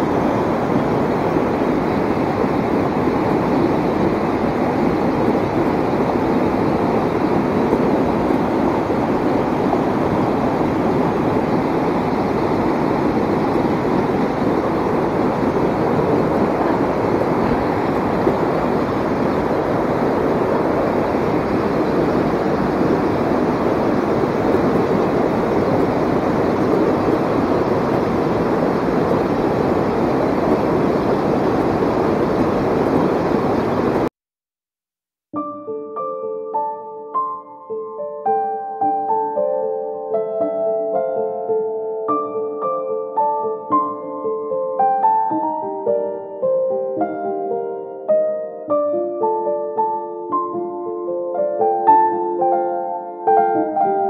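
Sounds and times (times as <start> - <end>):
stream rushing over rocks: 0.0 - 34.1.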